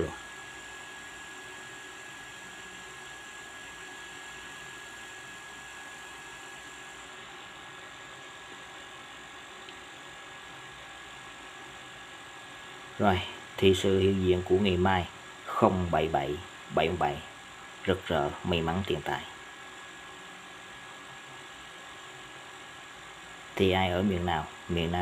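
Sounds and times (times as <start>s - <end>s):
faint high whine: 0.0s - 25.0s.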